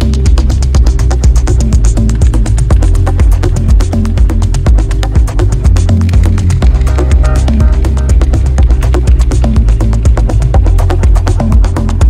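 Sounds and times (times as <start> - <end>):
deep synth bass line: 0.0 - 12.0
rapid hi-hat ticks: 0.0 - 12.0
held synth tones: 6.6 - 10.7.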